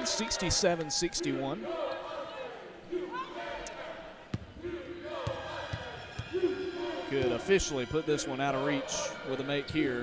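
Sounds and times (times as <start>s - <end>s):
voices in arena: 0.0s - 10.0s
basketball bouncing on court: 5.2s - 6.4s.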